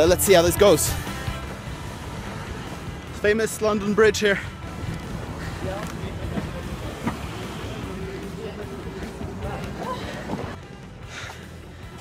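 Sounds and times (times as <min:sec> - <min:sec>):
background music: 0:00.0 - 0:12.0
traffic rumble: 0:00.0 - 0:12.0.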